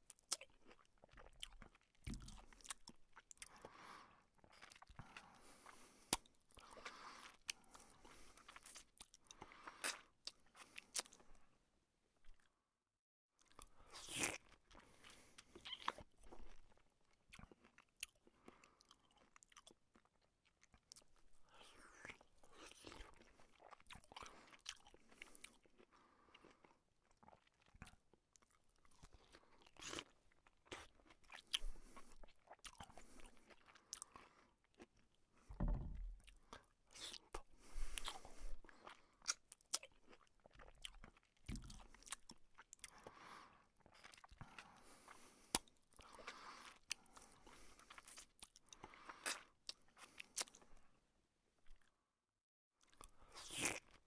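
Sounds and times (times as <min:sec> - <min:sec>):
person chewing and eating: 0:00.0 - 0:11.6, 0:13.4 - 0:51.0, 0:52.8 - 0:54.0
low thump: 0:35.6 - 0:36.2.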